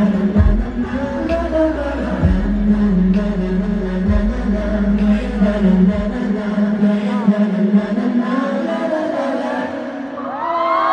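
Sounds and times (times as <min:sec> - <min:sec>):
backing music: 0:00.0 - 0:08.4
crowd chanting in unison: 0:06.0 - 0:10.3.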